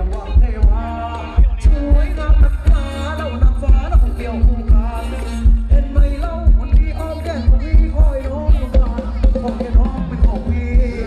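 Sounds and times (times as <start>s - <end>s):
amplified band dance music: 0.0s - 11.0s
heavy bass drum thumping: 0.0s - 11.0s.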